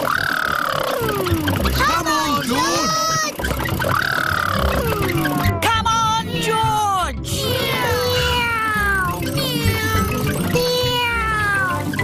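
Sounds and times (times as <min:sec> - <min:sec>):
upbeat background music: 0:00.0 - 0:12.0
cartoon children cheering: 0:01.1 - 0:03.4, 0:04.8 - 0:06.7, 0:07.4 - 0:12.0.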